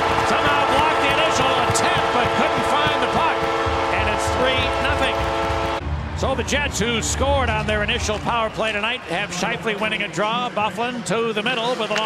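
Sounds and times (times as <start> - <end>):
goal horn chord: 0.0 - 6.1
arena crowd cheering: 0.0 - 12.0.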